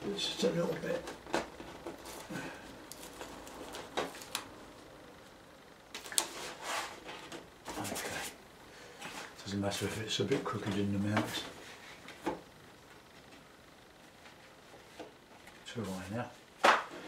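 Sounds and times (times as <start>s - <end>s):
paper rustling: 0.7s - 4.5s.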